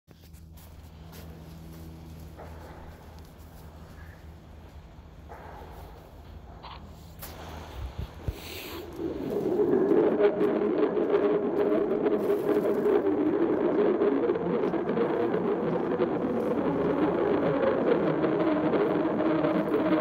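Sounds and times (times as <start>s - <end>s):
low steady hum: 0.1s - 20.0s.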